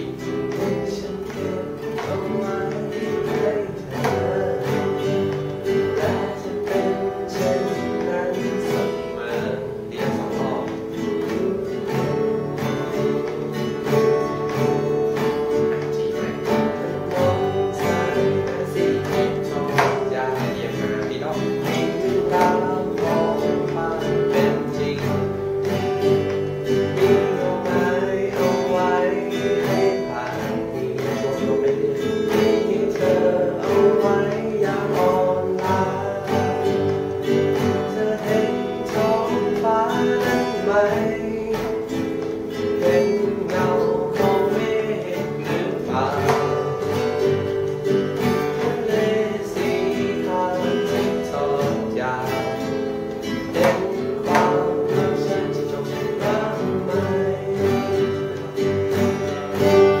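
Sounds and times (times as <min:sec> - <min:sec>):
fingerstyle acoustic guitar: 0:00.0 - 1:00.0.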